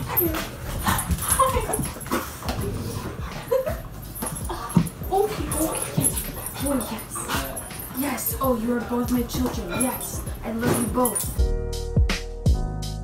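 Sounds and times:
dogs whining: 0:00.0 - 0:11.4.

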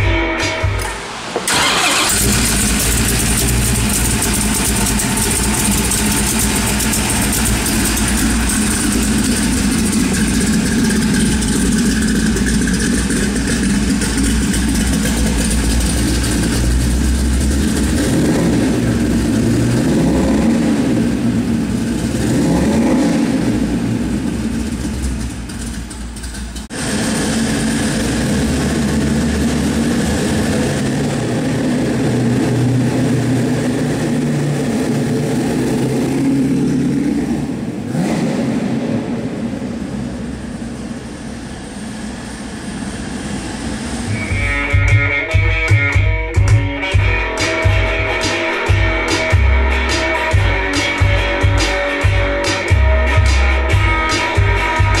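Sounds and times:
engine throttle blips: 0:00.0 - 0:55.0
car engine starting and idling: 0:00.7 - 0:55.0.

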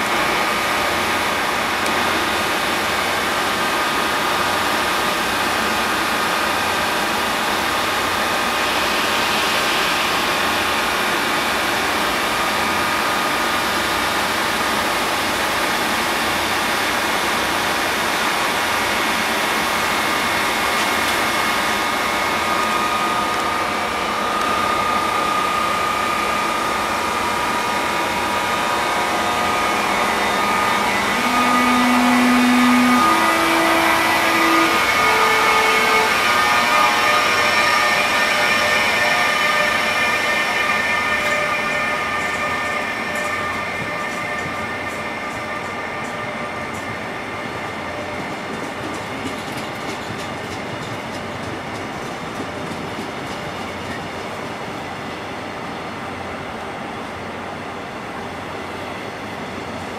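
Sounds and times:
electric locomotive whirring and whining: 0:00.0 - 0:59.9
locomotive low tones rising in pitch: 0:21.4 - 0:48.3.

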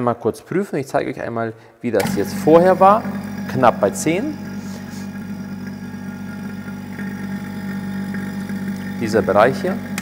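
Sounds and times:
vacuum pump humming: 0:02.0 - 0:10.0.

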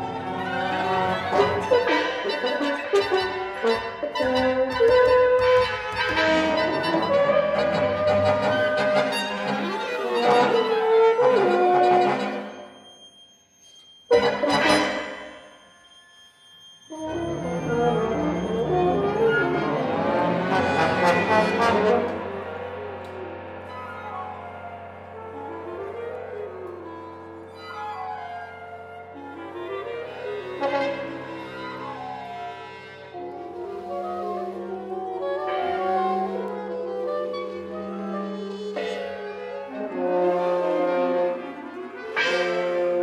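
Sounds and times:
chamber ensemble playing: 0:00.0 - 0:12.7, 0:14.1 - 0:15.8, 0:16.9 - 0:43.0.

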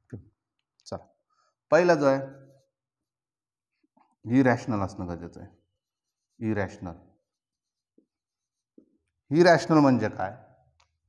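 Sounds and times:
marker scratching on whiteboard: 0:01.8 - 0:09.7.

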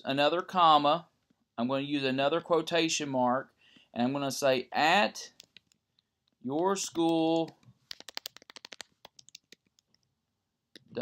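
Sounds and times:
keyboard keys clicking: 0:06.9 - 0:09.9.

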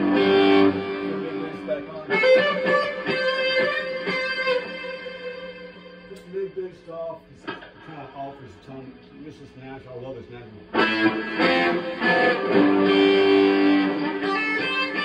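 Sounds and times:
overdriven electric guitar: 0:00.0 - 0:06.7, 0:10.6 - 0:15.0.

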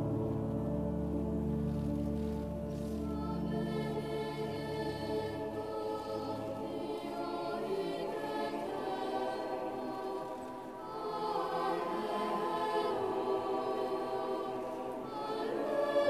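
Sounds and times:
choir singing: 0:00.0 - 0:16.0.

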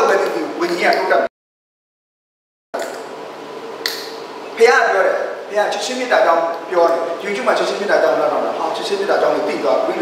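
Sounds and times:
hall room tone: 0:02.8 - 0:10.0
sharp click: 0:03.8 - 0:04.2.

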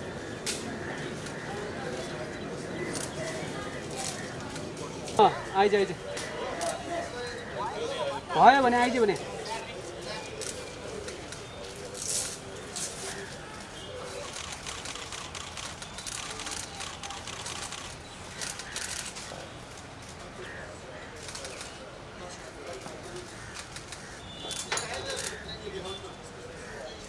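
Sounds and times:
crowd chatter: 0:00.0 - 0:27.0
murmur of voices: 0:00.0 - 0:27.0.

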